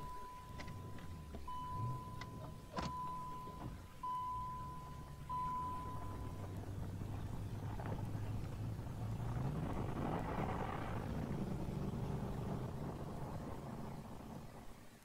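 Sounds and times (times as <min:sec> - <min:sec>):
thin steady high tone: 0:00.0 - 0:07.9
car engine rumble pulling away: 0:00.0 - 0:15.0.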